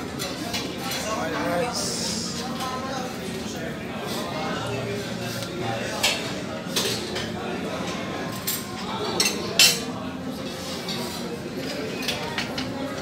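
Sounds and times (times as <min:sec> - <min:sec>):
background chatter: 0:00.0 - 0:13.0
metal utensils and dishes clinking: 0:04.0 - 0:13.0.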